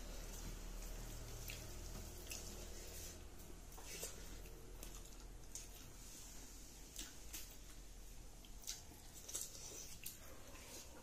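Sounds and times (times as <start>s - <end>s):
chewing mouth sounds: 0.2s - 3.0s, 8.3s - 11.0s.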